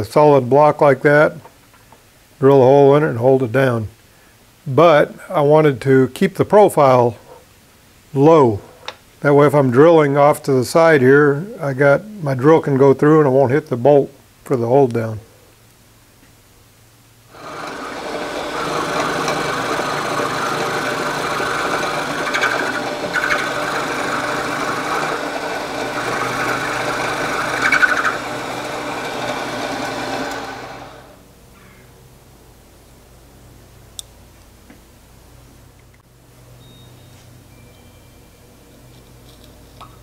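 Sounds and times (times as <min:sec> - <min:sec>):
milling machine cutting metal: 0:17.4 - 0:31.2.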